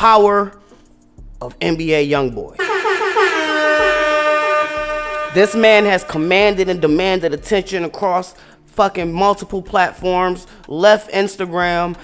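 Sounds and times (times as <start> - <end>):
faster wavering tone: 2.6 - 7.0
horn-like pitched tone: 2.6 - 7.3.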